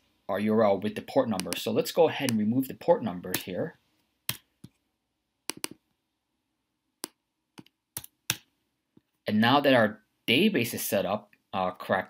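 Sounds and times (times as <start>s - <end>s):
mouse clicks: 1.3s - 2.4s, 5.5s - 5.8s.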